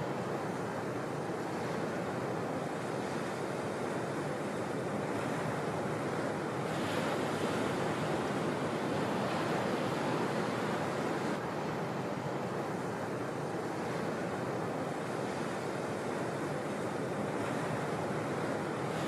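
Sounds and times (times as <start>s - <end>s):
waves breaking: 0.0s - 19.0s.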